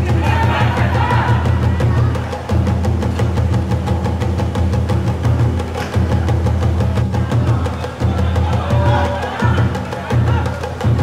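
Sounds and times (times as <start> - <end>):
music with drum beat and bass: 0.0 - 11.0.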